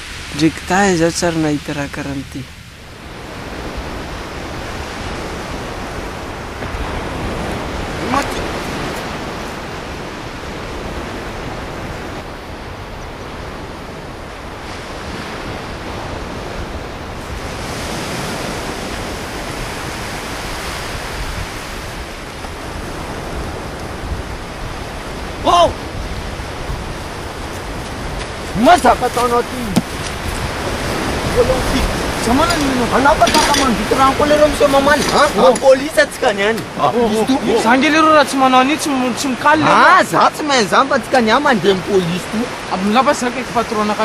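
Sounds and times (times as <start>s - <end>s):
wind on microphone: 0.0s - 38.3s
sea surf rushing: 0.0s - 44.0s.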